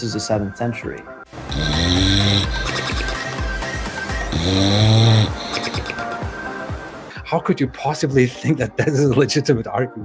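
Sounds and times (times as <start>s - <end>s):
background music: 0.0s - 10.0s
dog snoring: 1.5s - 3.2s, 4.3s - 5.9s.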